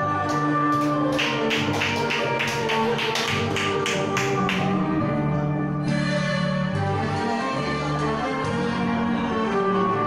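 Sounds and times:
karaoke backing track: 0.0 - 10.0.

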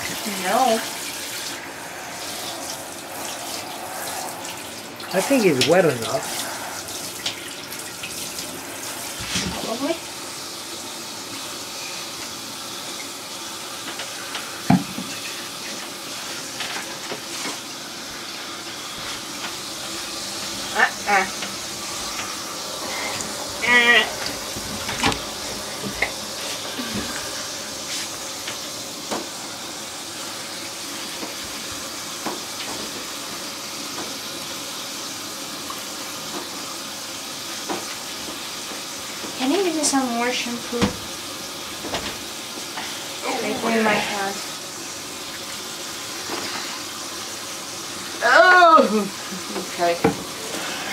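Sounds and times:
shower water running: 0.0 - 50.9
cat crying: 22.7 - 24.6.

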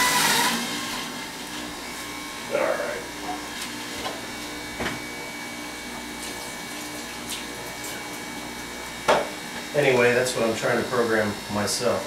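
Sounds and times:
electric juicer grinding: 0.0 - 12.0.

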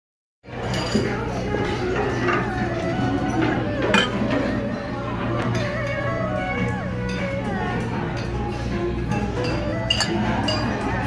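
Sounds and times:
music: 0.4 - 11.0.

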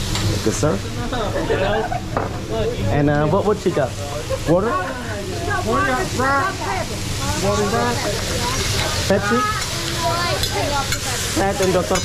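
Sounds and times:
food sizzling on a griddle: 0.0 - 12.0
people talking: 0.5 - 12.0.

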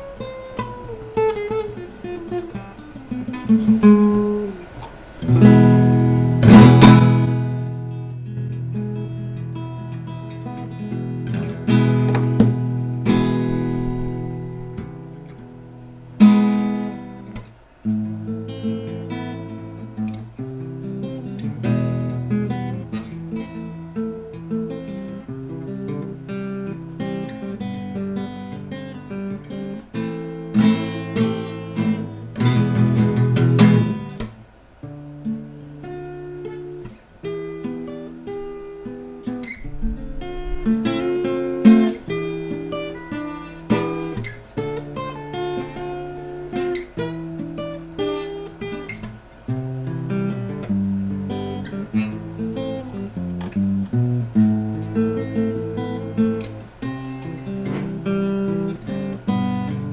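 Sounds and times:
solo acoustic guitar: 0.0 - 59.9.

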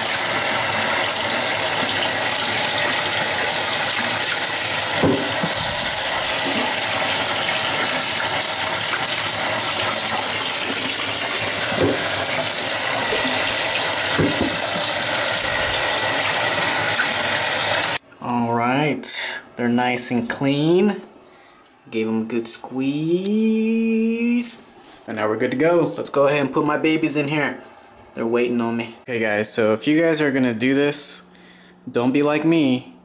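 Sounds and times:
faucet running over sponge: 0.0 - 18.0.

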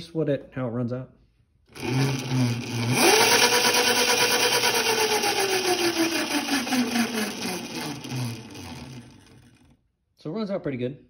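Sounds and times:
electric motor whine: 1.8 - 9.7.

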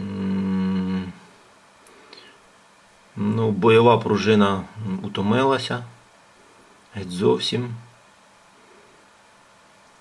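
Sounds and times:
man humming hesitantly: 0.0 - 1.4.

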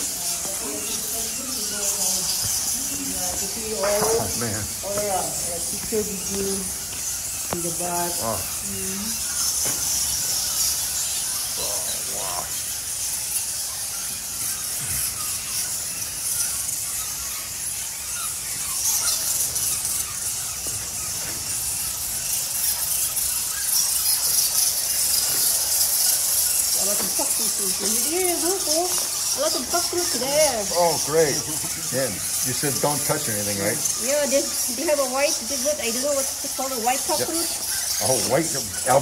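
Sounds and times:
low voices: 0.0 - 9.2, 11.5 - 12.7, 26.7 - 39.0
bats squeaking: 0.0 - 39.0.

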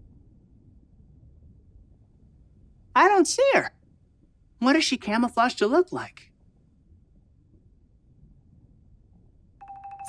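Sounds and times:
faint low rumble: 0.0 - 10.0
electronic tone with rapid ticking: 9.6 - 10.0.

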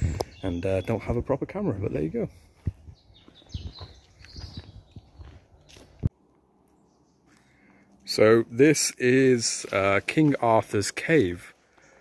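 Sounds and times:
footsteps crunching on dirt path: 0.0 - 6.2, 9.1 - 12.0
faint bird chirp: 2.7 - 6.0.

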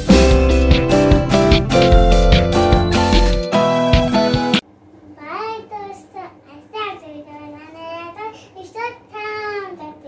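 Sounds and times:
girl singing: 6.5 - 10.0.

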